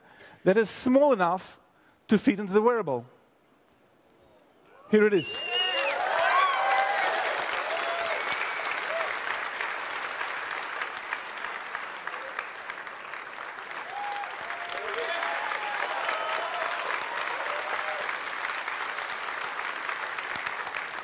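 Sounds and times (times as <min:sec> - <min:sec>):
audience applauding: 0:05.4 - 0:21.0
voices among clapping: 0:05.8 - 0:21.0.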